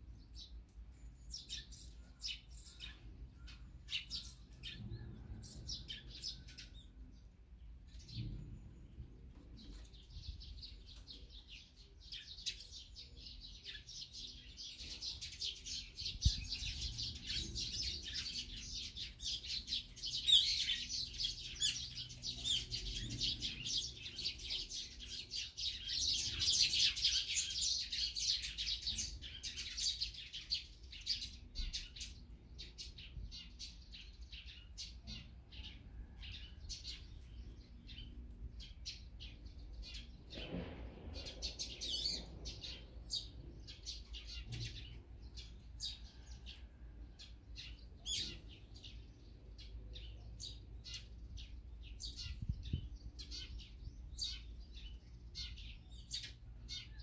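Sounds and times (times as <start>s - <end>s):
songbirds chirping: 0.0s - 57.0s.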